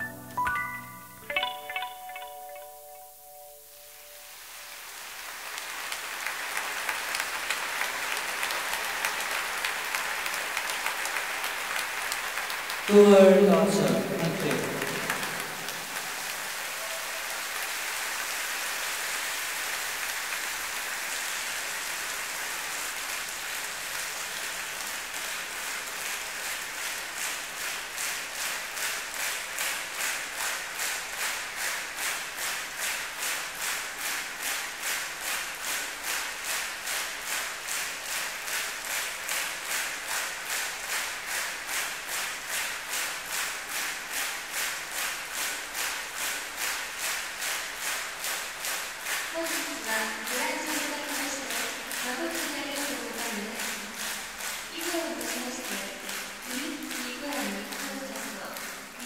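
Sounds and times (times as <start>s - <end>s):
audience applauding: 4.5s - 59.0s
rhythmic clapping in unison: 5.2s - 59.0s.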